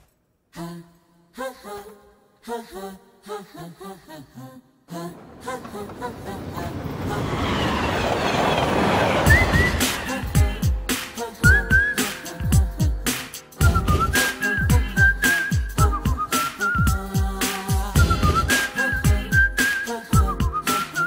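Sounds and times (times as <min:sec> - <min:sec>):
whistled tune: 0:07.6 - 0:10.5, 0:11.3 - 0:12.6, 0:13.6 - 0:21.0.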